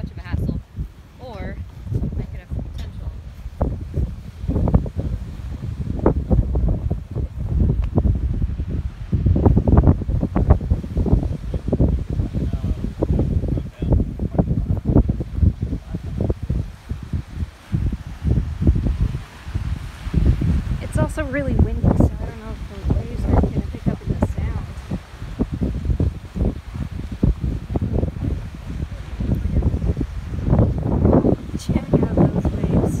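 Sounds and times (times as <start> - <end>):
waves on rocks: 0.0 - 33.0
wind buffeting microphone: 0.0 - 33.0.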